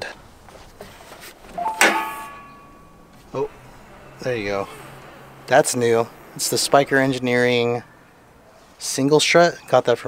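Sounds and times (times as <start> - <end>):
metal car hood clunk: 1.7 - 2.8.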